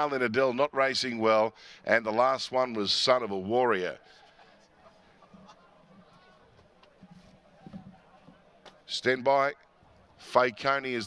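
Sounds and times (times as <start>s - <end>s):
murmur of distant voices: 3.8s - 11.0s.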